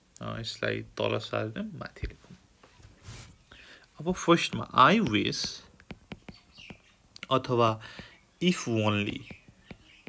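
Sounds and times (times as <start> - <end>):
faint breath sounds: 2.8 - 4.0, 7.8 - 8.3.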